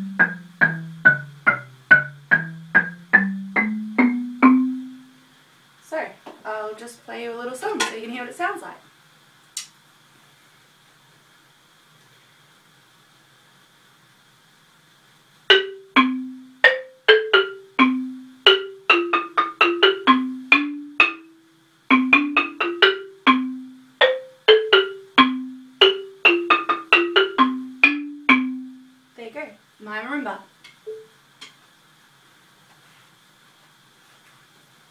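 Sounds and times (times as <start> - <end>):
marimba melody: 0.0 - 5.2, 15.5 - 29.0, 30.9 - 31.1.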